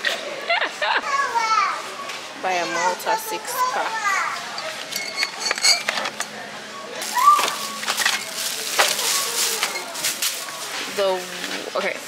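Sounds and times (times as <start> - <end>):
glass bottles clinking: 4.5 - 6.4, 7.0 - 10.6.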